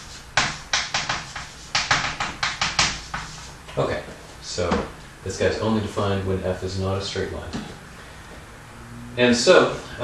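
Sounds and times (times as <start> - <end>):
chalk tapping and scratching: 0.0 - 3.6.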